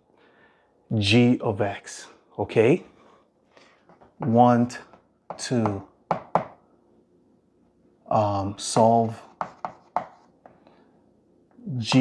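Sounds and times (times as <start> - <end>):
chalk tapping on blackboard: 3.9 - 6.6, 8.7 - 10.6.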